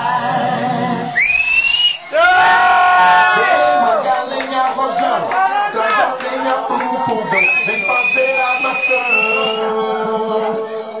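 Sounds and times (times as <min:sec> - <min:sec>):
music: 0:00.0 - 0:11.0
shrill rising whistle: 0:01.1 - 0:02.3, 0:07.3 - 0:09.8.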